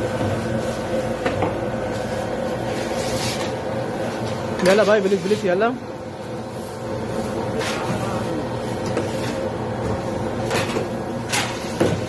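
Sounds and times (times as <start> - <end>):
kitchen machine hum: 0.0 - 12.0.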